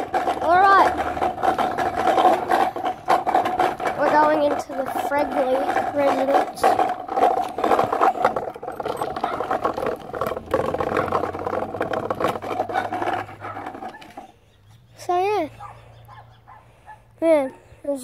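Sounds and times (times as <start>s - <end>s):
bike rattling on dirt path: 0.0s - 16.6s.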